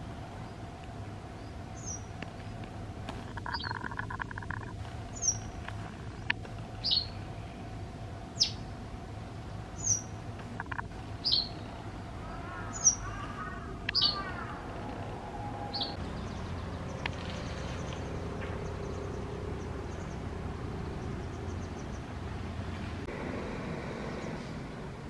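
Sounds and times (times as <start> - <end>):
wagtail calling: 1.3 - 7.7, 9.7 - 23.0.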